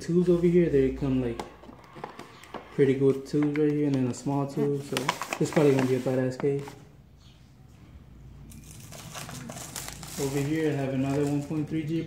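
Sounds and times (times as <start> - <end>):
plastic wrapping crinkling: 8.5 - 11.8.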